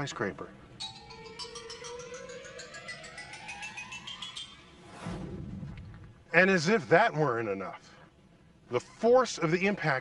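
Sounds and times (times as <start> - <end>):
fast ticking pulse: 0.7 - 5.0
synth tone gliding upward: 0.8 - 5.9.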